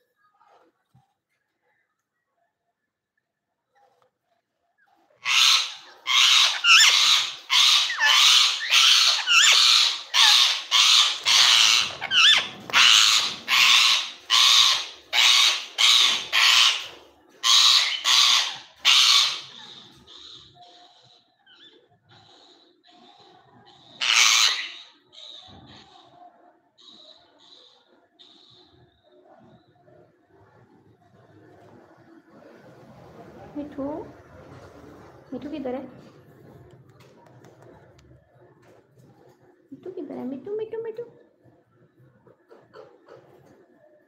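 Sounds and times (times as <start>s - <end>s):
parakeet screeching calls: 5.2s - 29.0s.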